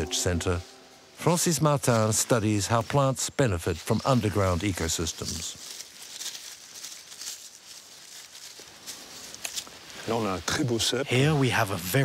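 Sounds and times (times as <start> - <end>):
footsteps in dry leaves: 0.0 - 10.4.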